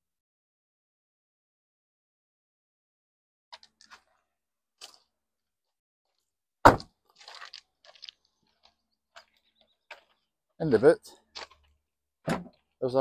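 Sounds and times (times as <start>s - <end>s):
footsteps on gravel: 6.7s - 11.8s.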